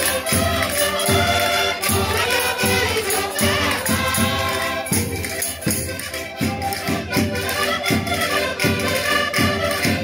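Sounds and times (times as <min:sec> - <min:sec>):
people singing: 0:00.0 - 0:05.7
concertinas playing folk tune: 0:00.0 - 0:10.0.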